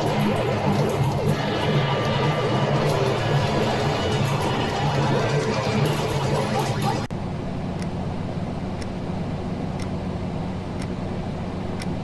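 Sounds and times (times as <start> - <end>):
clock ticking: 0.0 - 7.1, 9.8 - 10.0
low electrical hum: 0.0 - 12.0.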